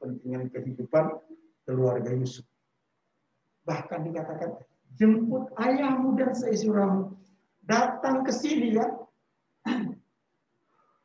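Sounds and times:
man clearing his throat: 9.6s - 10.0s.

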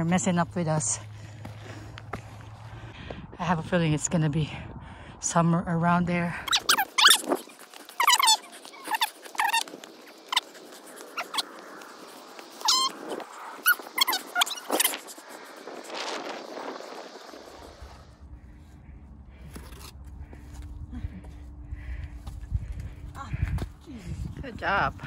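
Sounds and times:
high-pitched squeaky calls: 6.5s - 15.6s.

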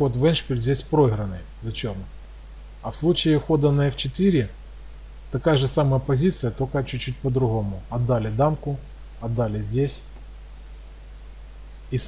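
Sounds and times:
low steady hum: 0.0s - 12.0s
man's voice: 5.4s - 10.0s
computer mouse clicks: 7.3s - 8.2s, 8.9s - 10.8s.

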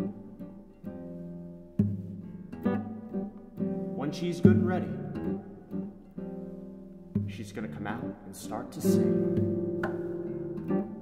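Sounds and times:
fingerstyle classical guitar chords: 0.0s - 11.0s
low guitar bass note: 3.9s - 5.9s.

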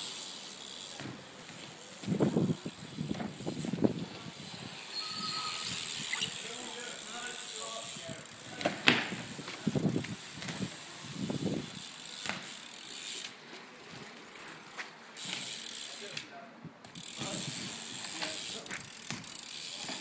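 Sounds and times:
bike freewheel ticking: 0.0s - 20.0s.

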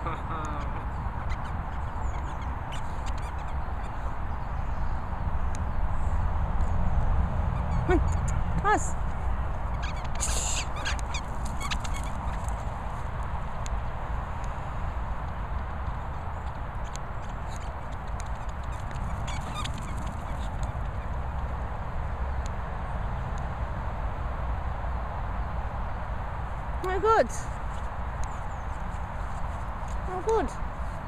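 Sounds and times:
squeaky toy squeaking: 9.8s - 12.4s.

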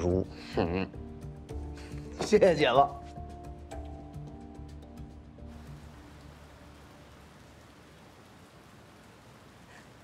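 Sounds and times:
background music: 0.0s - 8.1s
faint hiss of rain: 3.7s - 10.0s.

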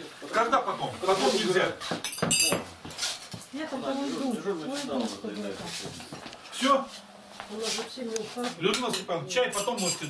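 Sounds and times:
dishes clinking: 2.0s - 2.8s, 8.7s - 10.0s.

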